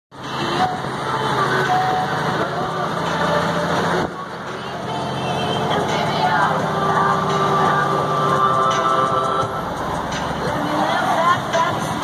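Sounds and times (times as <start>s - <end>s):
road and engine noise: 0.1s - 12.0s.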